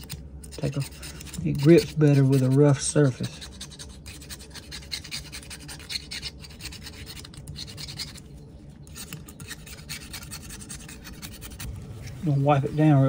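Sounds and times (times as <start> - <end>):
hand tool scratching metal: 0.0 - 13.0.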